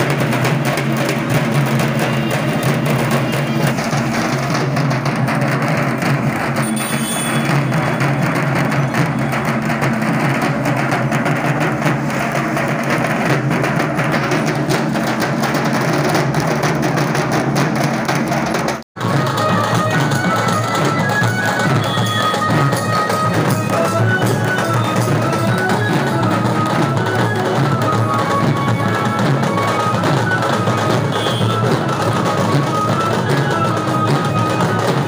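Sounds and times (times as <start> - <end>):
barrel drums beaten with sticks: 0.0 - 35.0.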